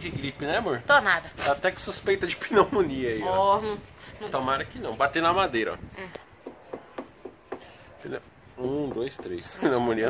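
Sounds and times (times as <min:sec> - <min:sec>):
knuckles knocking on wood: 0:06.4 - 0:07.7, 0:08.7 - 0:09.6.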